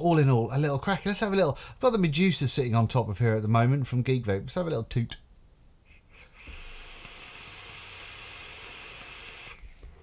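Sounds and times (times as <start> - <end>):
vape draw hiss: 5.9 - 10.0.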